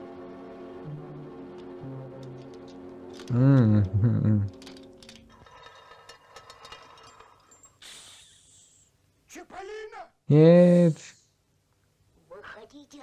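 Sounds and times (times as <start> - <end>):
cartoon soundtrack music: 0.0 - 4.6
small clicks: 1.5 - 5.3.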